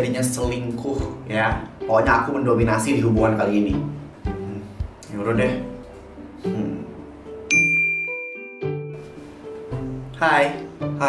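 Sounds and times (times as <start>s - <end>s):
light background music: 0.0s - 11.0s
bright bell-like ding: 7.5s - 8.9s.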